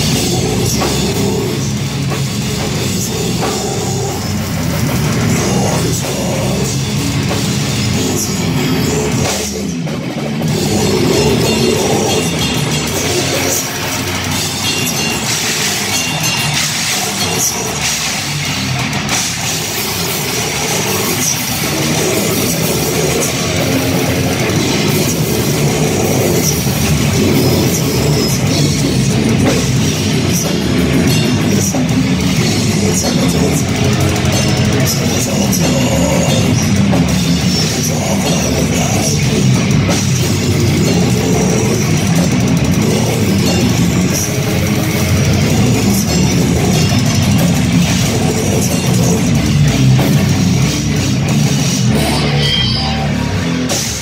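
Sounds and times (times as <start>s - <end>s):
bass guitar: 0.0s - 54.0s
distorted electric guitars: 0.0s - 54.0s
drum kit: 0.0s - 54.0s.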